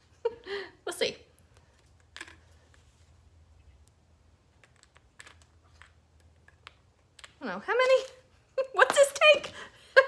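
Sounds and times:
low room hum: 0:00.0 - 0:10.0.

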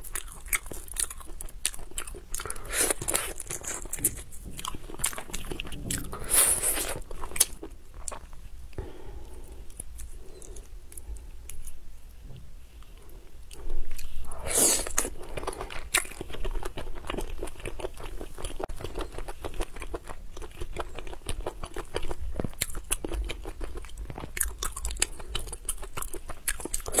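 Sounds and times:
wet chewing and biting: 0:00.0 - 0:08.3, 0:13.9 - 0:27.0.

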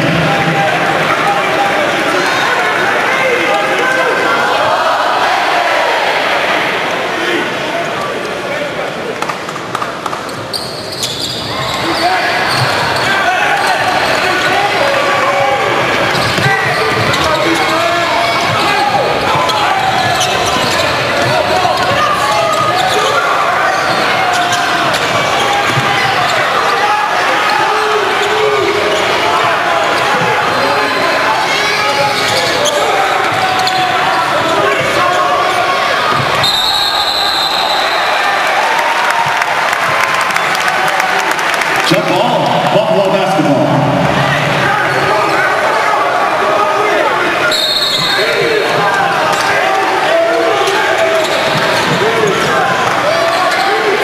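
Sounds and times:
arena crowd voices: 0:00.0 - 0:54.0.

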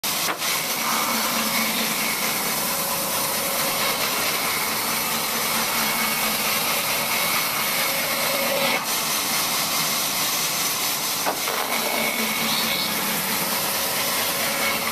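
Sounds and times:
band saw cutting wood: 0:00.0 - 0:14.9.

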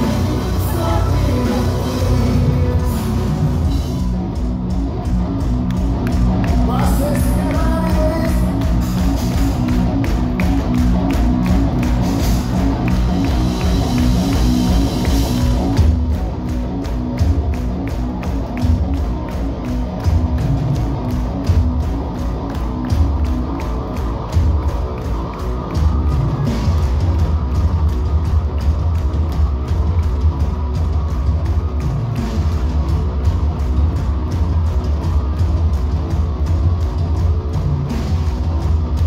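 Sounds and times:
metalcore band playing live: 0:00.0 - 0:39.0.

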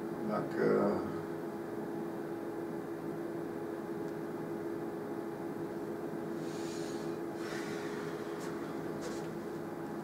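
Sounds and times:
room tone hum and hiss: 0:00.0 - 0:10.0.

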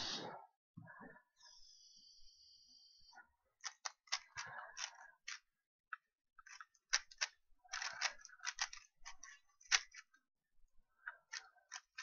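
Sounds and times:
puzzle cube clicking: 0:03.6 - 0:05.4, 0:06.4 - 0:10.1, 0:11.3 - 0:12.0.

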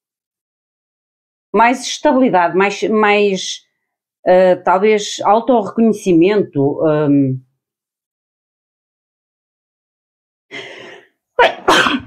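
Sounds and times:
breathy intake of breath: 0:10.5 - 0:11.2
woman sneezing: 0:11.4 - 0:12.0.

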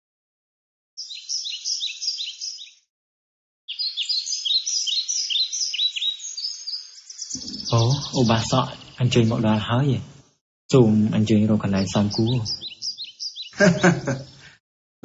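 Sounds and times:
bird chirping: 0:01.0 - 0:02.9, 0:03.7 - 0:14.5.

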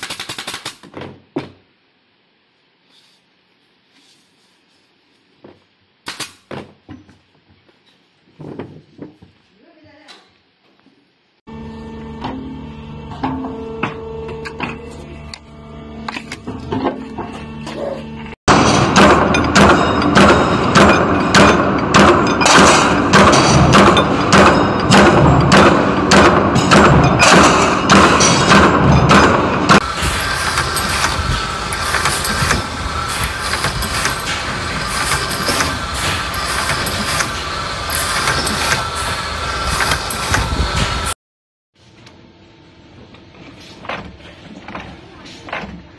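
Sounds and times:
drilling machine running: 0:11.5 - 0:41.1
hydraulic shear humming: 0:11.5 - 0:41.1
metal clanks and knocks: 0:12.2 - 0:15.0, 0:16.0 - 0:17.9, 0:18.5 - 0:39.0.

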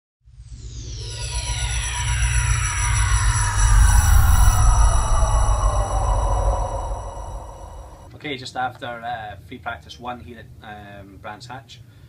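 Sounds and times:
falling electronic sweeps: 0:00.3 - 0:08.1
steady high tones: 0:00.3 - 0:08.1
deep pulsing bass drone: 0:00.4 - 0:08.1.

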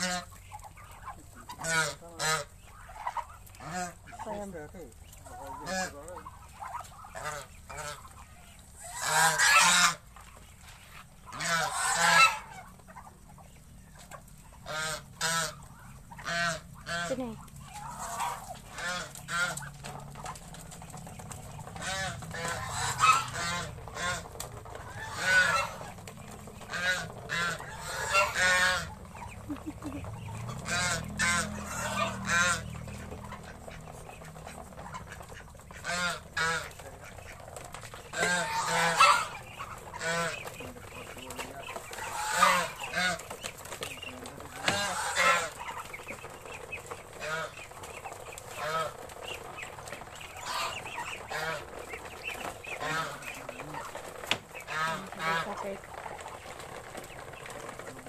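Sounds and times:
geese honking: 0:00.0 - 0:58.0.

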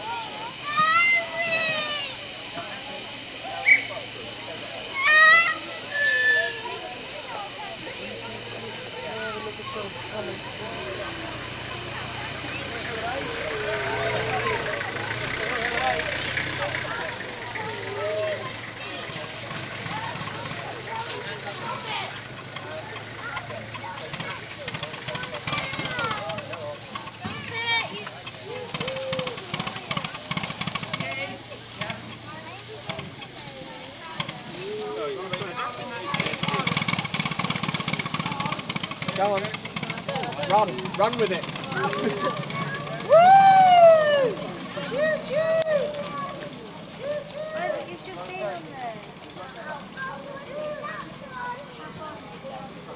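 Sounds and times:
people's voices: 0:00.0 - 0:52.9
steam locomotive hissing: 0:00.0 - 0:52.9
locomotive wheels slipping: 0:07.8 - 0:52.9.

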